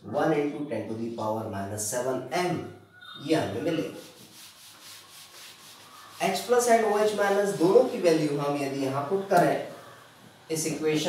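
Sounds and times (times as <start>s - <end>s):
eraser rubbing on whiteboard: 3.6s - 8.8s.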